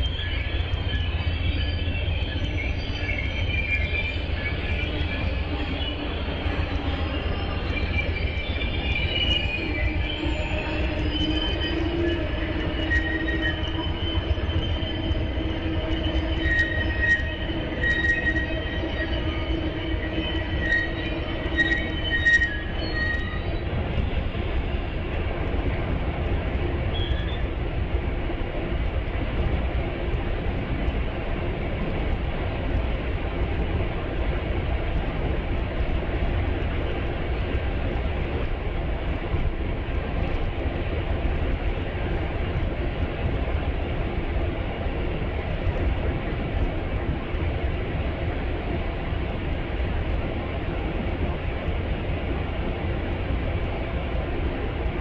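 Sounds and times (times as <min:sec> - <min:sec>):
steel wheels squealing: 0:00.0 - 0:24.9, 0:26.9 - 0:27.6
diesel train rumble: 0:00.0 - 0:55.0.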